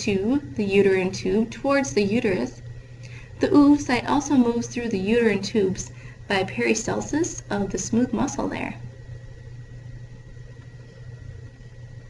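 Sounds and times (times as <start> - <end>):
faint high whine: 0.0 - 12.0
low hum: 0.0 - 12.0.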